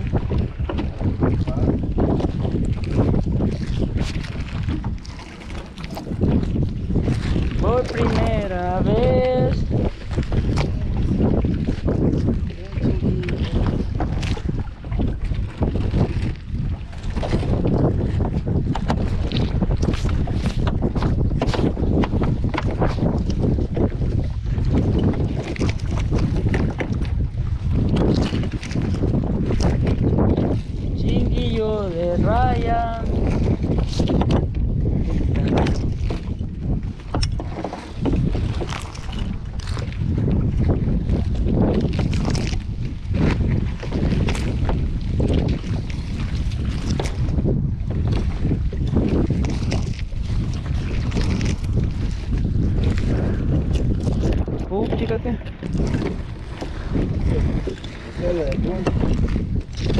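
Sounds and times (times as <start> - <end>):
water splashes: 0.0 - 59.9
wind buffeting microphone: 0.0 - 59.9.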